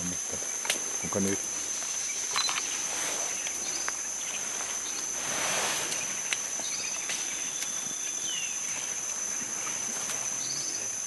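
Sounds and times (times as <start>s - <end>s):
insects droning: 0.0s - 11.0s
rustle of leaves and stems: 0.1s - 11.0s
faint clicks and chirps: 2.2s - 2.8s.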